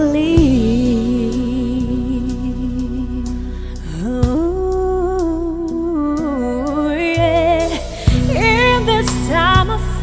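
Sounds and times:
karaoke backing track: 0.0s - 10.0s.

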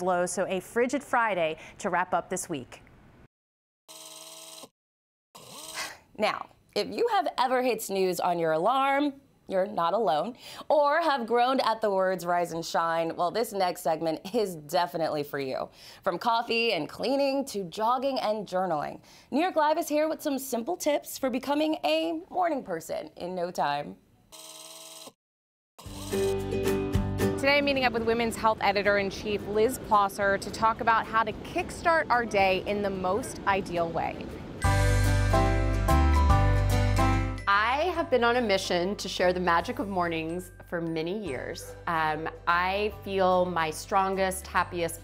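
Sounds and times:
electronic buzzing tone: 3.9s - 4.7s, 24.3s - 25.2s, 25.8s - 26.5s
music: 25.8s - 29.7s, 34.6s - 45.0s.

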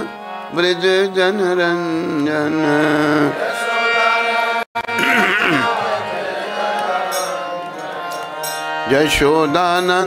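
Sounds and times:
man singing: 0.0s - 3.5s, 8.8s - 10.0s
electronic keyboard sustained chord: 0.0s - 10.0s.

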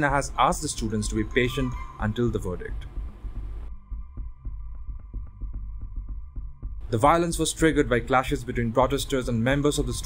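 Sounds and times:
bass-heavy background music: 0.0s - 10.0s.

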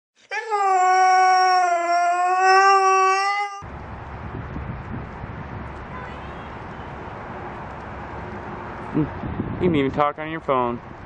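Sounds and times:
dog howling: 0.4s - 3.6s.

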